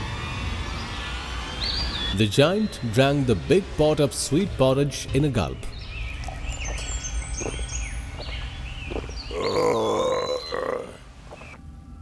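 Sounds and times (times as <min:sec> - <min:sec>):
long loud burp: 0:09.3 - 0:11.0.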